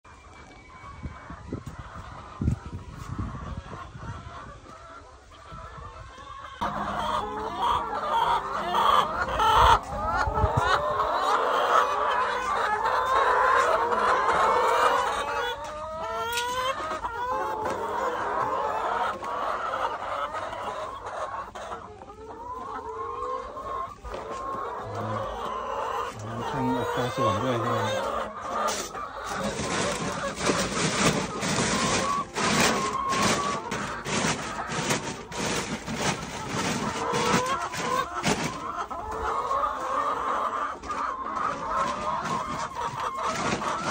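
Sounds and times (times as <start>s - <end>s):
hens clucking: 0.1s - 43.9s.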